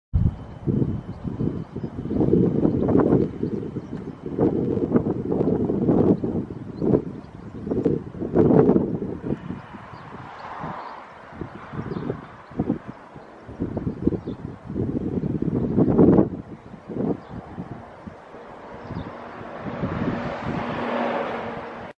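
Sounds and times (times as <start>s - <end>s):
wind buffeting microphone: 0.1s - 21.9s.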